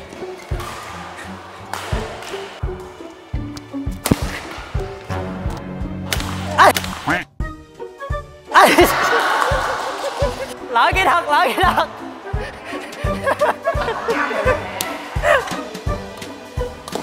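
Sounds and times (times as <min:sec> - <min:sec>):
rackets hitting shuttlecock: 0:00.1 - 0:03.0, 0:03.6 - 0:05.0.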